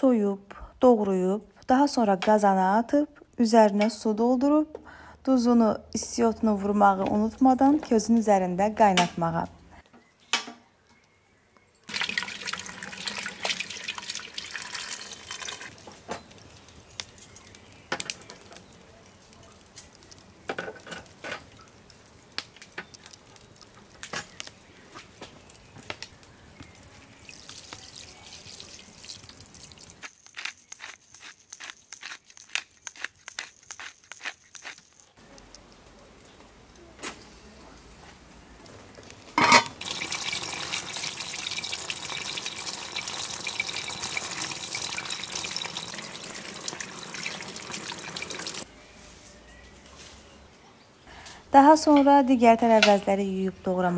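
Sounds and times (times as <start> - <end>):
light crackles and ticks: 15.9 - 26.9, 35.3 - 36.9.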